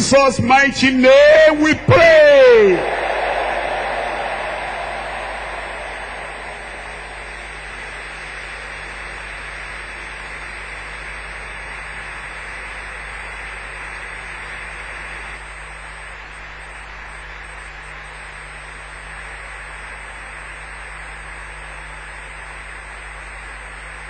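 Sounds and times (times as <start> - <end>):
congregation applauding: 2.6 - 8.0.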